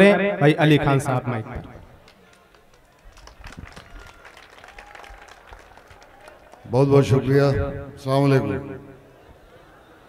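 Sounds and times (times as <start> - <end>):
audience applause: 2.0 - 6.7.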